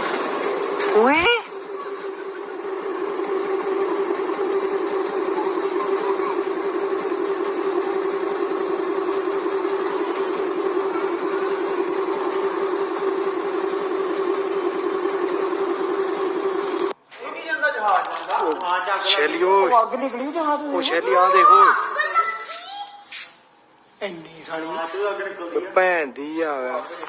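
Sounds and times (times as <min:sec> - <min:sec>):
engine droning steadily: 0:00.0 - 0:17.0.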